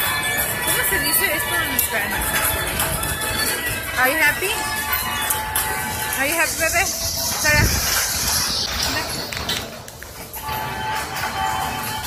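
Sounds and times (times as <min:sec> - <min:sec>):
voices: 0:00.0 - 0:07.9
carousel music: 0:00.0 - 0:12.0.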